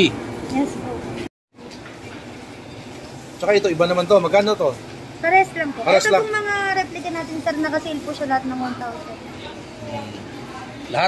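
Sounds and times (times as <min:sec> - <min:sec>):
shopping mall background noise: 0:00.0 - 0:11.0.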